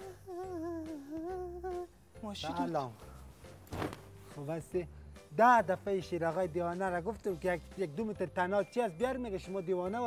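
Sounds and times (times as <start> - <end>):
person humming a slow tune: 0.0 - 2.0.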